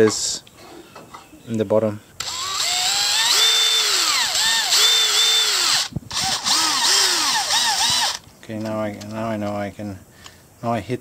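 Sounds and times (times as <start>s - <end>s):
cordless drill whining: 2.2s - 8.2s.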